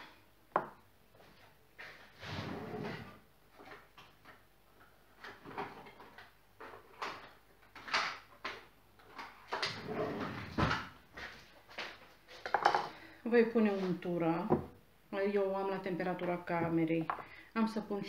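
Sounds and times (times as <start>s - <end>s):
drawer and utensils clattering: 1.9s - 3.8s, 9.1s - 11.0s.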